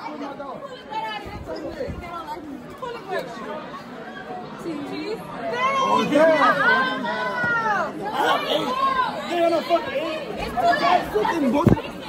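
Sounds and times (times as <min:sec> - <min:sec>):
teenagers chattering: 0:00.0 - 0:12.0.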